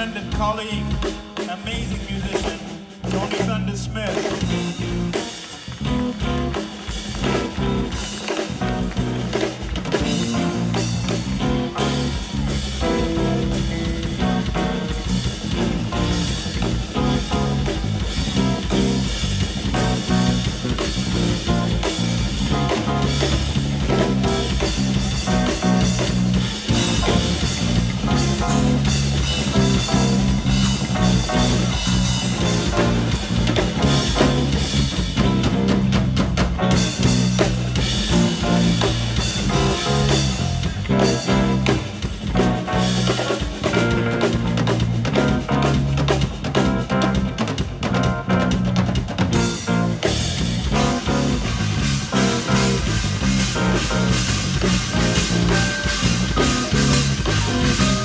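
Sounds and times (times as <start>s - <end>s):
bass guitar low notes: 0.0s - 58.0s
drum kit groove: 0.0s - 58.0s
electric guitar: 0.0s - 58.0s.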